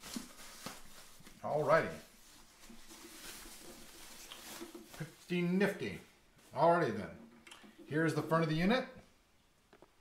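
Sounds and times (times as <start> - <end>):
foam packing sleeve rustling: 0.0 - 5.3.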